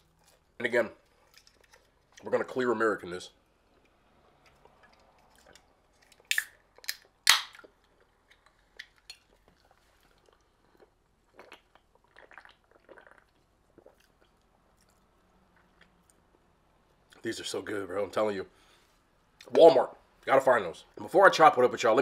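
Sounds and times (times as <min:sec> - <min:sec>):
can opening pop: 0:06.3 - 0:07.6
gulping and swallowing: 0:10.3 - 0:14.4.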